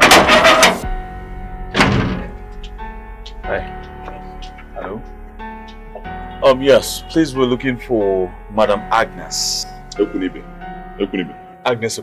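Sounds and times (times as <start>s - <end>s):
soft background music: 0.1s - 12.0s
knocks on metal gate: 1.7s - 2.4s.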